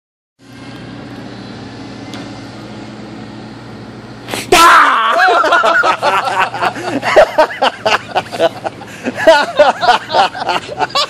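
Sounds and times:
low mechanical hum: 0.4 - 11.0.

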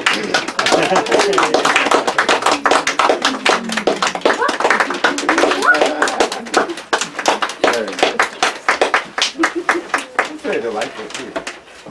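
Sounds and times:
audience applauding: 0.0 - 11.6
people talking: 2.5 - 6.8, 9.6 - 11.4.

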